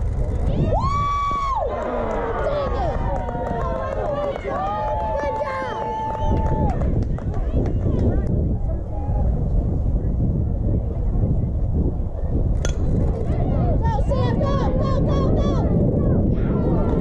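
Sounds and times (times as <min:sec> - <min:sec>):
spectators shouting and cheering: 0:00.2 - 0:09.4, 0:13.2 - 0:17.0
long drawn-out yells: 0:00.5 - 0:06.8.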